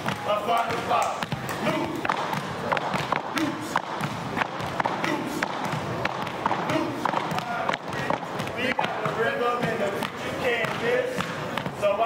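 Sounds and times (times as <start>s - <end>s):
stomps and cane taps on wood floor: 0.0s - 11.8s.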